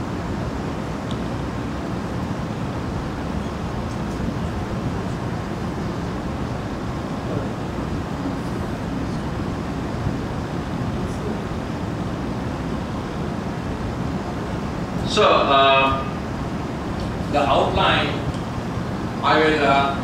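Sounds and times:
low rumbling room hum: 0.0s - 20.0s.

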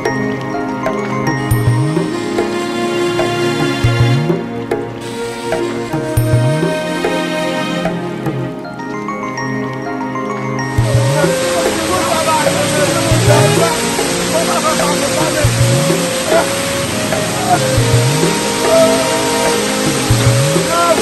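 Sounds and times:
music with rising low note: 10.6s - 21.0s
waterfall rushing onto rocks: 10.6s - 21.0s.

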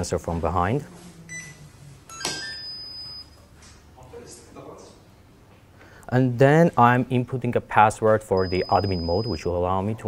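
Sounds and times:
electronic buzzer beep: 1.3s - 3.4s, 8.4s - 9.5s.

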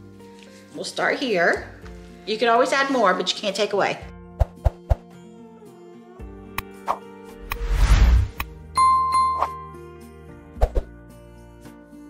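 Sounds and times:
background music: 0.0s - 12.0s
bell-like notification chime: 8.8s - 9.9s.

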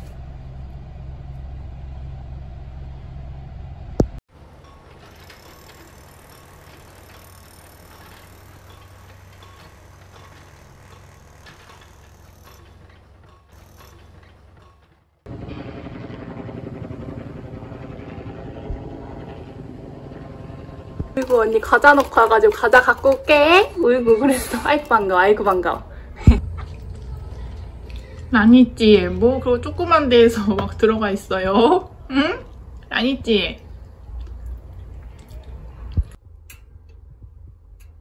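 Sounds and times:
droning hum: 0.0s - 38.0s
shop ambience: 4.3s - 15.2s, 20.9s - 38.0s.

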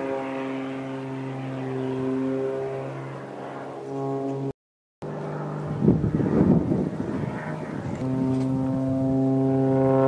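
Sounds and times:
low droning hum: 0.0s - 10.0s.

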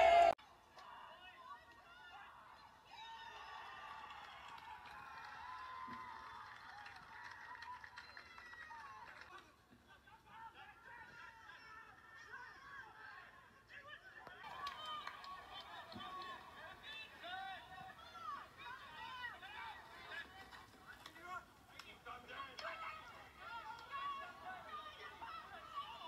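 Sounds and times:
distant players shouting: 14.4s - 26.0s.

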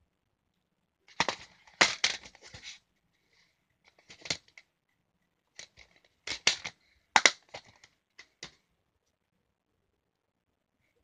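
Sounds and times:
plastic cases clicking: 1.1s - 2.7s, 3.9s - 4.6s, 5.6s - 8.6s.

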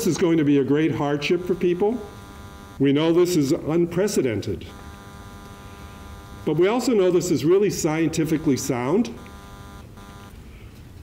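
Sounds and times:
faint buzz: 1.0s - 2.9s, 4.7s - 10.8s.

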